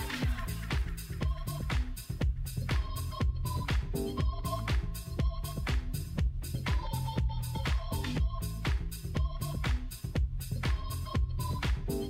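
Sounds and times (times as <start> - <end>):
disco house music: 0.0 - 12.0.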